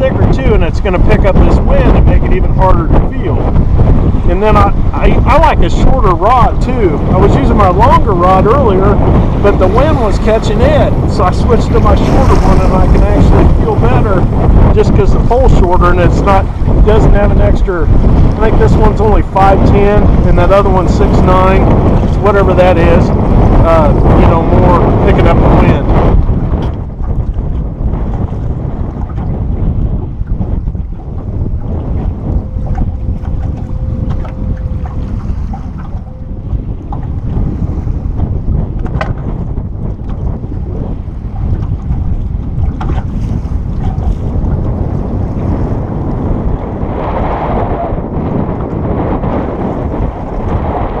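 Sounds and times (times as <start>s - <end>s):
lake water washing against boat: 0.0s - 51.0s
wind buffeting microphone: 0.0s - 51.0s.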